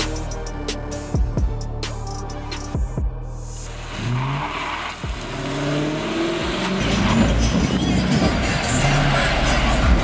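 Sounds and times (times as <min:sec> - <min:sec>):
car engine accelerating: 0:03.6 - 0:10.0.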